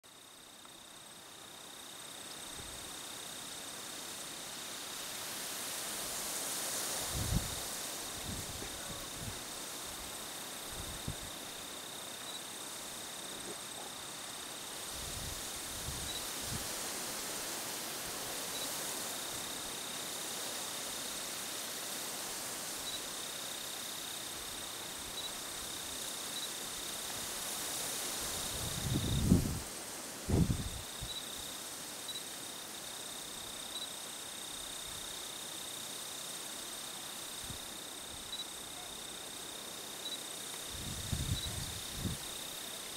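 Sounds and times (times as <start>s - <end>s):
high-pitched insect trill: 0.1s - 42.9s
soft hiss: 0.1s - 42.9s.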